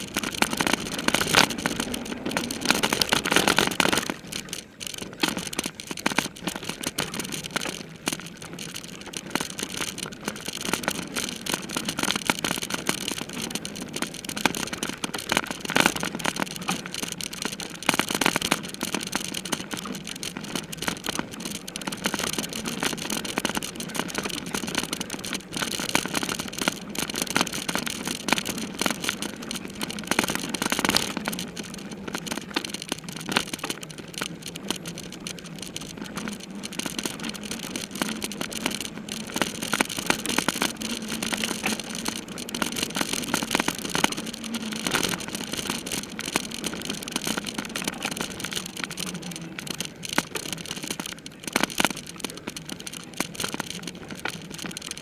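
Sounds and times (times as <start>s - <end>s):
bike rattling over rough ground: 0.0s - 55.0s
tyre noise: 0.0s - 55.0s.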